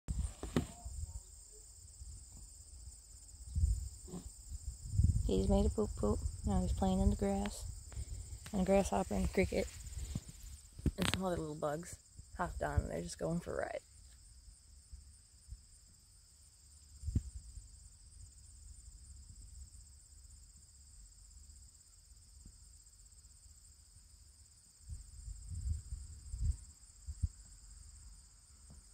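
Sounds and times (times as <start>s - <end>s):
crickets chirping: 0.1s - 28.9s
dull low thumps: 3.5s - 11.0s
low microphone rumble: 3.5s - 11.7s.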